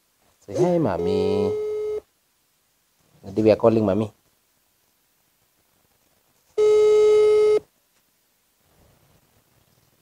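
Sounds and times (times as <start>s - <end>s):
phone ringback beep: 1.0s - 2.1s, 6.6s - 7.6s.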